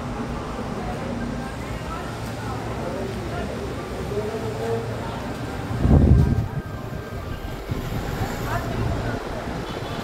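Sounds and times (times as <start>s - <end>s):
faint voices: 0.0s - 10.0s
wind noise: 5.6s - 10.0s.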